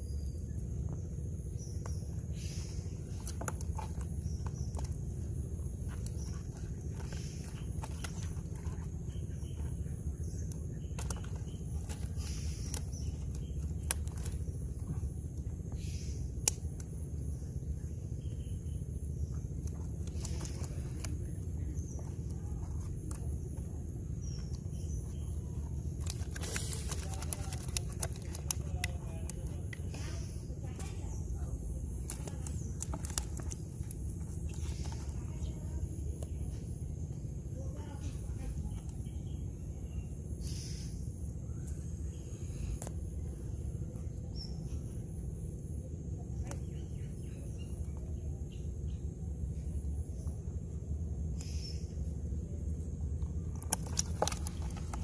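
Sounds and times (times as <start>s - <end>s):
net and fish rustling: 2.3s - 15.0s, 19.6s - 23.3s, 24.2s - 31.1s, 31.9s - 35.3s, 53.6s - 55.0s.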